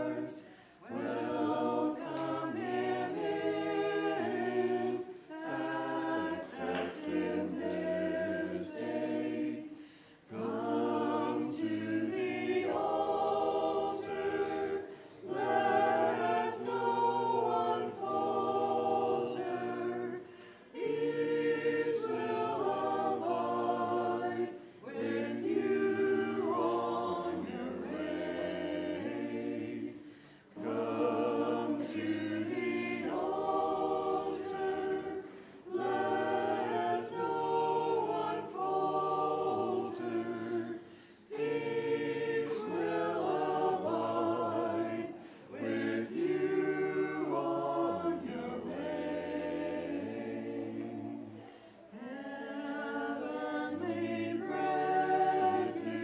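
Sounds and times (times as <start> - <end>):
choir chanting a cappella: 0.0 - 56.0.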